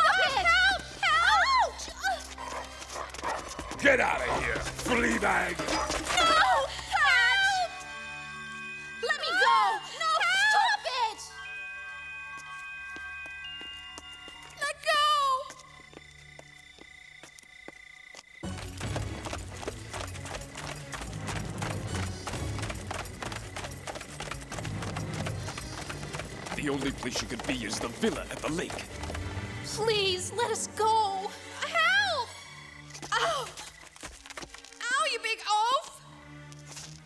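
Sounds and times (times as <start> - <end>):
galloping horse hoofbeats: 0.0 - 7.5, 12.4 - 30.2, 32.8 - 35.2
background music: 0.0 - 16.3, 18.4 - 37.0
held chord of background music: 3.8 - 14.3.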